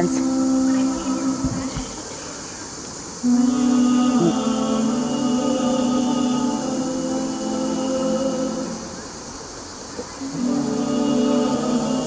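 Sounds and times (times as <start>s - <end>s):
men singing long low note: 0.0s - 12.0s.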